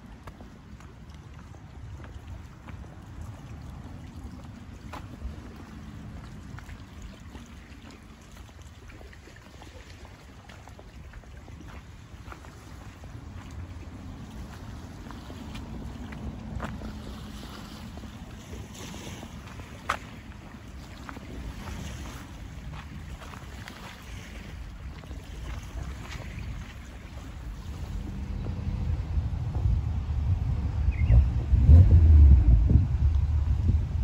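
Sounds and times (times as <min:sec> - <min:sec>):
wind on microphone: 0:12.5 - 0:34.0
road traffic: 0:27.4 - 0:34.0.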